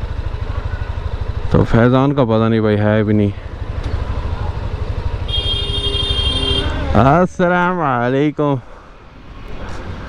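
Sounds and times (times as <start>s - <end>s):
motorcycle engine rumbling: 0.0s - 10.0s
vehicle horn: 5.2s - 7.0s.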